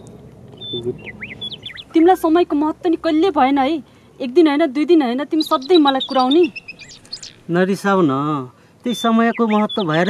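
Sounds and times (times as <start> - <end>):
high bird chirps: 0.0 - 2.4, 5.3 - 7.6, 8.9 - 10.0.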